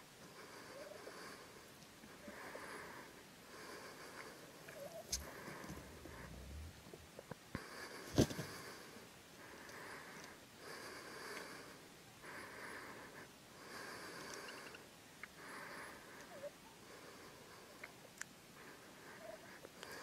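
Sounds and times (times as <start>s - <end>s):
soft hiss: 3.0s - 10.6s
turkey drumming low hum: 4.7s - 7.3s
turkey spitting puff: 4.8s - 7.0s.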